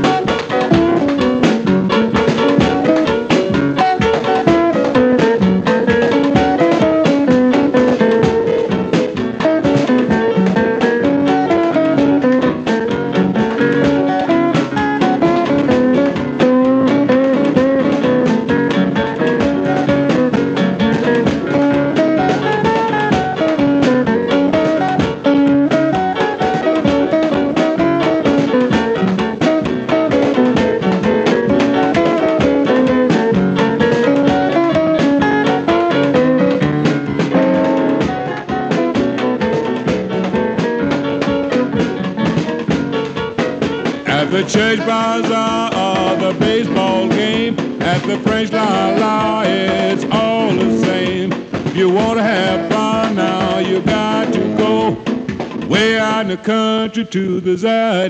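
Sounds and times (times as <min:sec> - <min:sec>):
guitar lead: 0:00.0 - 0:57.4
drum kit beat: 0:00.0 - 0:58.0.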